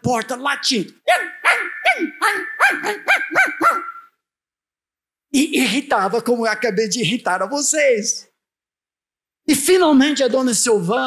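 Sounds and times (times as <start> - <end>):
man imitating dog yaps: 1.0 - 4.1.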